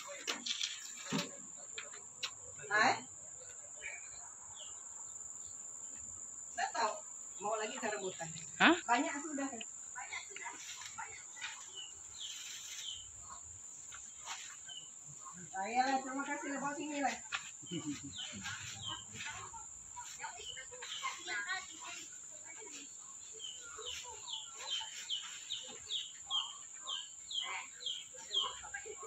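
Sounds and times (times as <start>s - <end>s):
high-pitched insect chorus: 0.0s - 29.0s
people talking: 6.6s - 12.0s, 15.1s - 29.0s.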